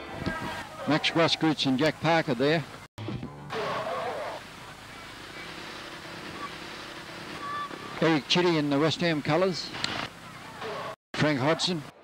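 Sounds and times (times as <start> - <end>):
steady rushing noise: 4.3 - 12.0.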